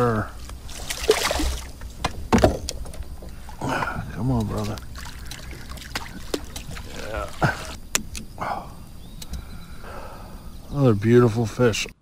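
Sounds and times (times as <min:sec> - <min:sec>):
fish splashing at surface: 0:00.7 - 0:01.8, 0:04.6 - 0:07.6.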